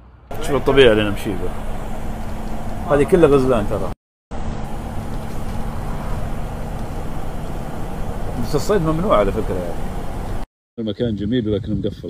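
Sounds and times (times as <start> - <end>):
engine and road noise: 0.0 - 10.5.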